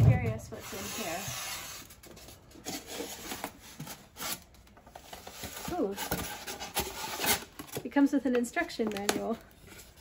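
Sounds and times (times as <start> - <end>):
foam box scraping: 0.5 - 2.0.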